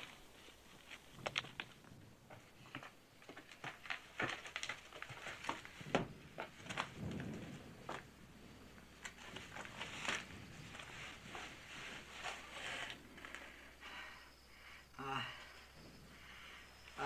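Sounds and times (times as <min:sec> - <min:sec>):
clicks and knocks of handled gear: 0:00.0 - 0:08.1.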